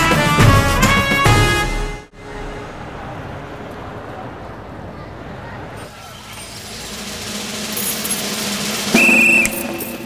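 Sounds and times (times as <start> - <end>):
street traffic noise: 0.0 - 10.0
loud high whistle or horn: 8.8 - 10.0.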